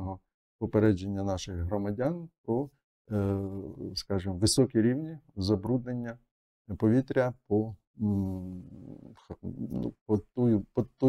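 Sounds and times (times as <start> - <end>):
man mumbling: 3.1 - 4.1, 8.0 - 10.7.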